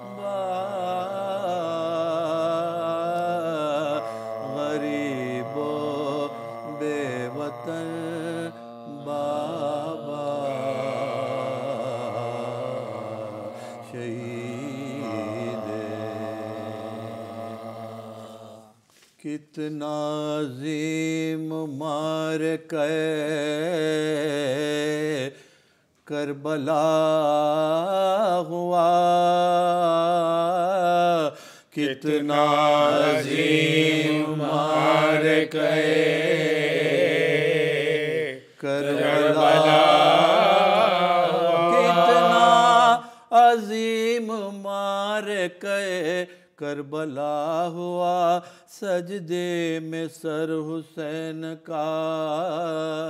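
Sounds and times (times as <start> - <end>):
men chanting a lament: 0.0 - 18.8, 26.2 - 53.0.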